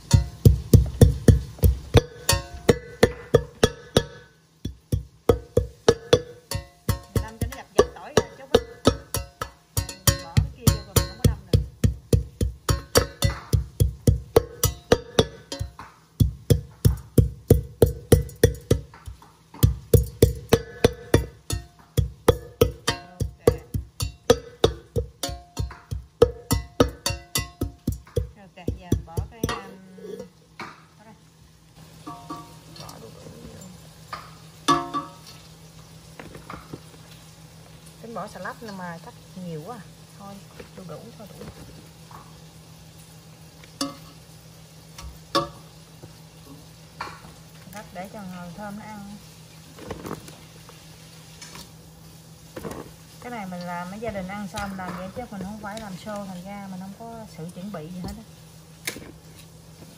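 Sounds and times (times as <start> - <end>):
pestle pounding in metal pot: 0.0 - 29.8, 34.1 - 35.3, 53.6 - 56.0.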